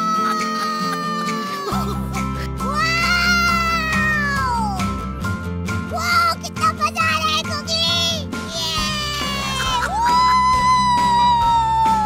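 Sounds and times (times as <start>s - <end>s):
long high-pitched swooping cry: 0.0s - 1.9s
bouncy background music: 0.0s - 12.0s.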